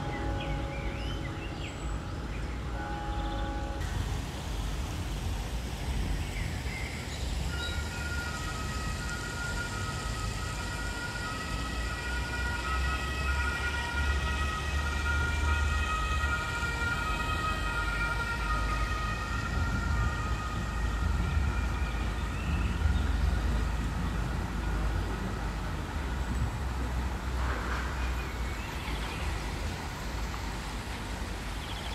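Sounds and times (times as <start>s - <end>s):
distant two-tone siren: 7.3s - 31.0s.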